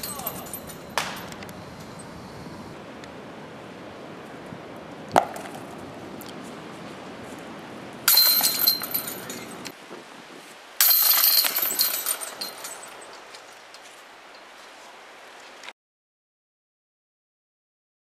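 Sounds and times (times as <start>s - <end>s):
disc golf basket chains jangling: 0.0s - 2.1s, 8.1s - 9.7s, 10.8s - 14.5s.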